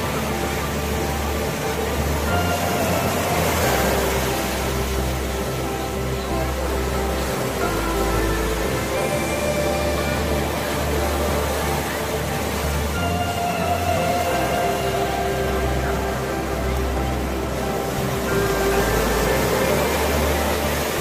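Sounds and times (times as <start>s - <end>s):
music with held tones and bass: 0.0s - 21.0s.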